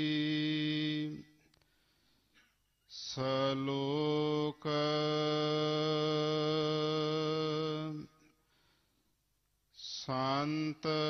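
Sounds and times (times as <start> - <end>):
man chanting: 0.0 - 1.4, 3.0 - 8.2, 9.8 - 11.0.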